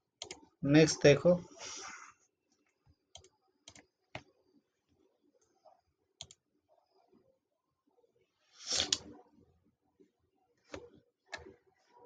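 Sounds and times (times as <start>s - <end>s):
computer mouse clicks: 0.2s - 0.5s, 3.1s - 4.3s, 6.2s - 6.4s, 8.7s - 9.2s, 10.7s - 11.6s.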